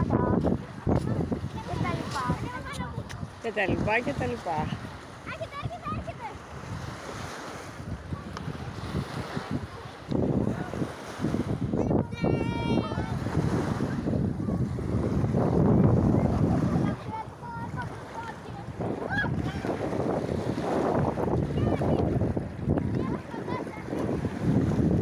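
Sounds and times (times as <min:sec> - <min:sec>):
small waves washing onto sand: 0:00.0 - 0:25.0
wind buffeting microphone: 0:00.0 - 0:25.0.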